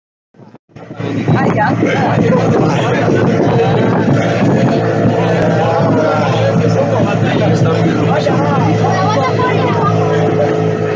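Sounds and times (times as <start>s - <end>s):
boat motor running: 0.4s - 10.9s
people talking: 1.0s - 10.9s.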